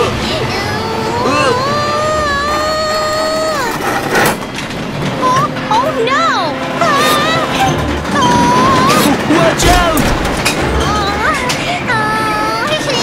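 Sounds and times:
cartoon wordless cry: 0:00.0 - 0:03.8, 0:06.8 - 0:09.9
sliding cartoon vocal sounds: 0:00.0 - 0:04.3, 0:06.8 - 0:09.7.

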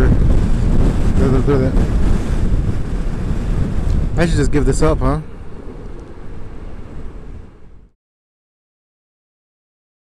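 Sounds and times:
wind buffeting microphone: 0:00.0 - 0:08.0.

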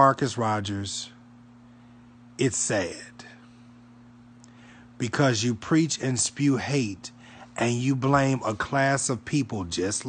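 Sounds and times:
faint low hum: 0:00.0 - 0:10.0
soft breath: 0:04.5 - 0:05.0, 0:07.1 - 0:07.6.

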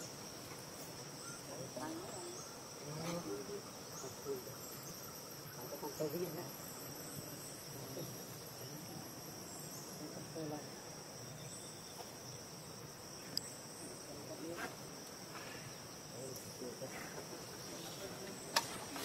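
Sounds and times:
high-pitched insect chorus: 0:00.0 - 0:19.0.

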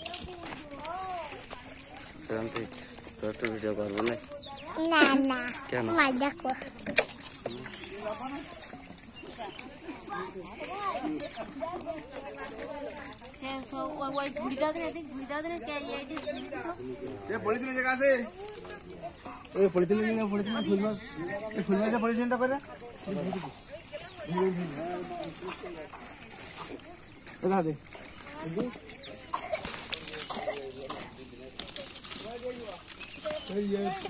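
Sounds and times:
people talking over one another: 0:00.0 - 0:34.0.

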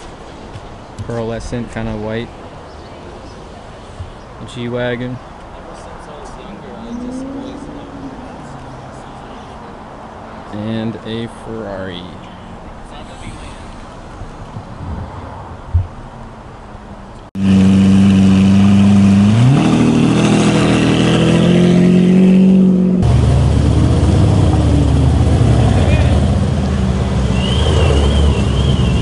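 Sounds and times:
cars rumbling past: 0:01.7 - 0:29.0
car engine revving: 0:06.4 - 0:09.8, 0:17.4 - 0:29.0.

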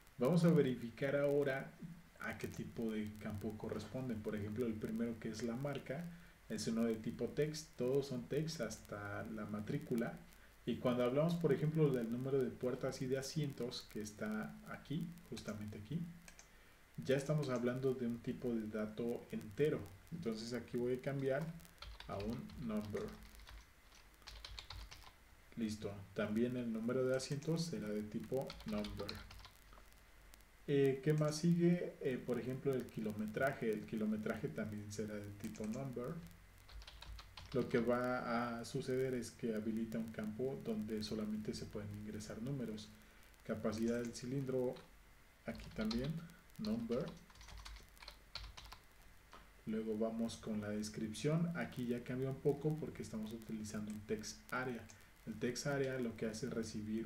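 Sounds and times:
faint keyboard typing: 0:00.2 - 0:30.1, 0:30.7 - 0:44.9, 0:45.5 - 0:57.0
computer keyboard keystrokes: 0:21.8 - 0:25.1, 0:28.5 - 0:29.5, 0:36.6 - 0:37.8, 0:45.6 - 0:48.8.

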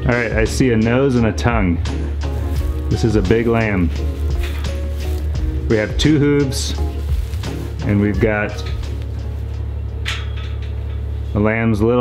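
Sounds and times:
steady low hum: 0:00.0 - 0:12.0
soft rustle: 0:02.2 - 0:09.7.

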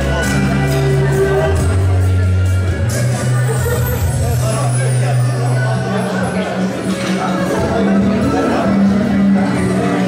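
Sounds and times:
loud music with deep bass: 0:00.0 - 0:10.0.

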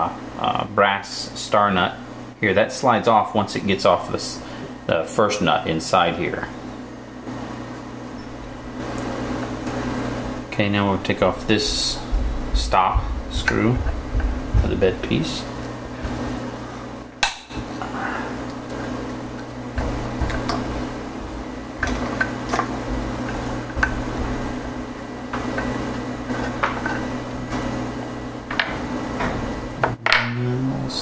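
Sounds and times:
low hum: 0:10.2 - 0:31.0.

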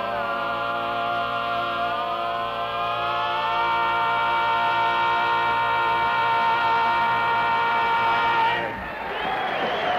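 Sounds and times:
barbershop quartet singing a cappella: 0:00.0 - 0:08.8.

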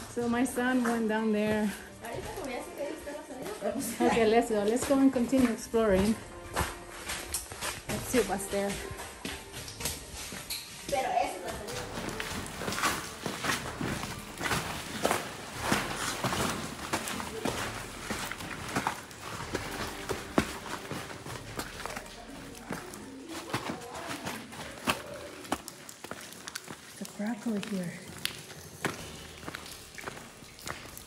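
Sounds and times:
footsteps scrambling over rock: 0:00.4 - 0:31.0.

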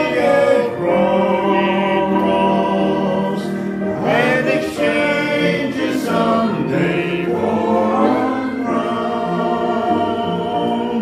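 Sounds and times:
voices singing a hymn: 0:00.0 - 0:11.0.

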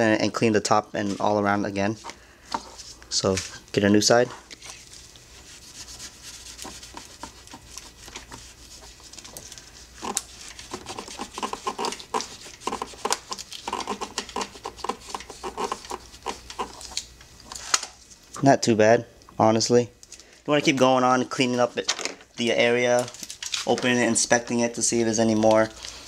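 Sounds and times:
rag wiping metal: 0:05.4 - 0:16.8.

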